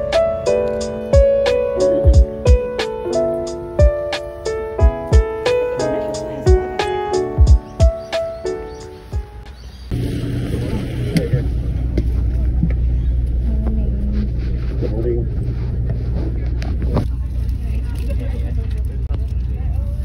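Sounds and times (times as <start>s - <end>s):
bus engine humming: 0.0s - 20.0s.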